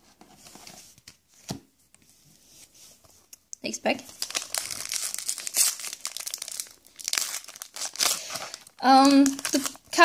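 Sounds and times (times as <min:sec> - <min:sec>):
foil wrapper crinkling and tearing: 0:04.1 - 0:10.0.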